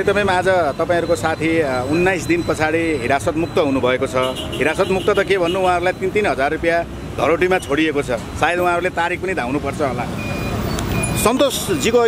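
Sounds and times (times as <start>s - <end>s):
low engine rumble of traffic: 0.0s - 12.0s.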